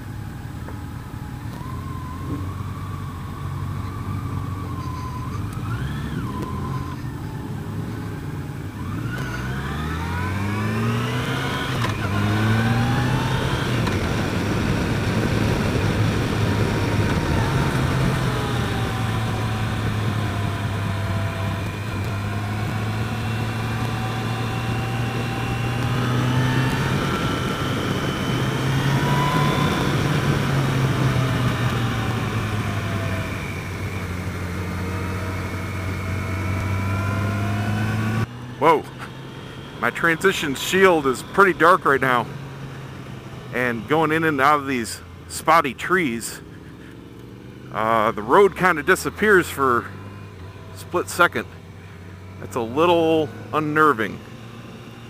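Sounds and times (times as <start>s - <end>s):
motorcycle engine revving: 1.1s - 55.0s.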